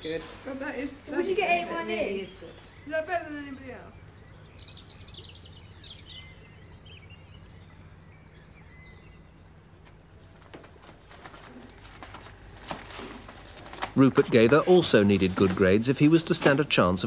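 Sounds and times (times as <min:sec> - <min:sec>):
songbirds chirping: 0:00.0 - 0:17.0
steady low hum: 0:00.0 - 0:17.0.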